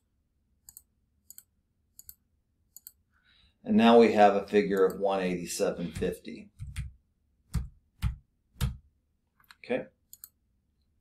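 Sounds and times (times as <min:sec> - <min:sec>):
computer mouse clicks: 0:00.6 - 0:03.0, 0:09.4 - 0:10.4.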